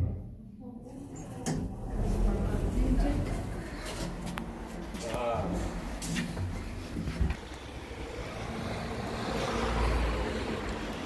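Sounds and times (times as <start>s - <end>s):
steady low rumble: 0.7s - 10.9s.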